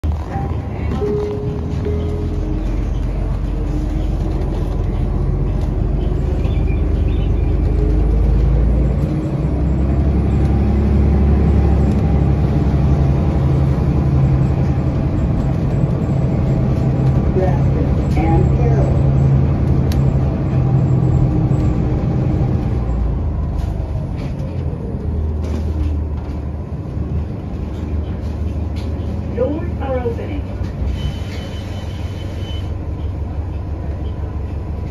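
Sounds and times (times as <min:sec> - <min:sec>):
bus engine drone: 0:00.0 - 0:34.9.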